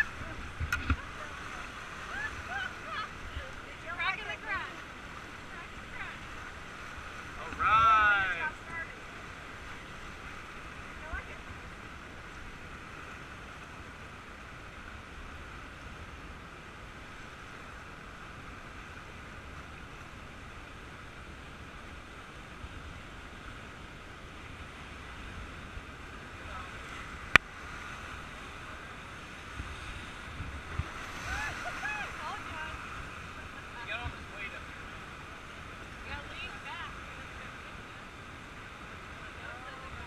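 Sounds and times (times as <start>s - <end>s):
voices calling out: 0.0s - 4.8s, 31.0s - 37.6s
whitewater rushing: 0.0s - 40.0s.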